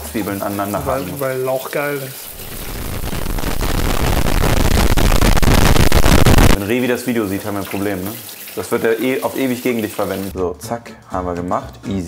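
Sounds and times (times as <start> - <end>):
harsh distorted crackle: 2.3 - 6.6.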